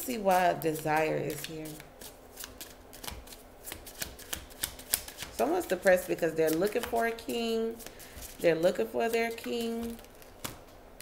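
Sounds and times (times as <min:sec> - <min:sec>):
cards being shuffled: 0:00.6 - 0:05.4, 0:07.7 - 0:10.7.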